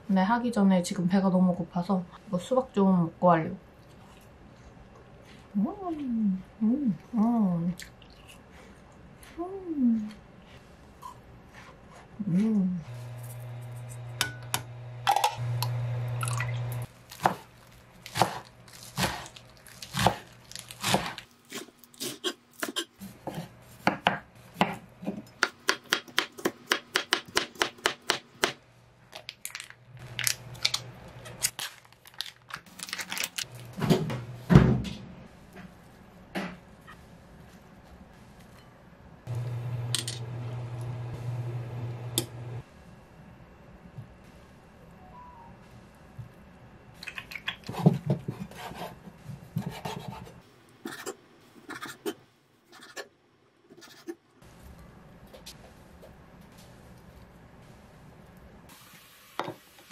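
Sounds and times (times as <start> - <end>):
low steady hum: 0.0 - 21.9, 28.6 - 51.4.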